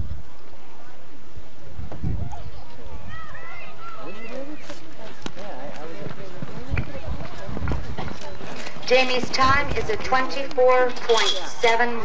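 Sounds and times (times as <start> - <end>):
people calling out: 2.3 - 4.7
horse hoofbeats on dirt: 4.6 - 11.2.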